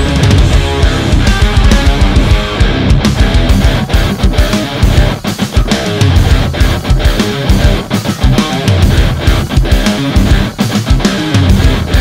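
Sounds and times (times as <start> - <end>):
distorted electric guitar metal riffs: 0.0 - 12.0.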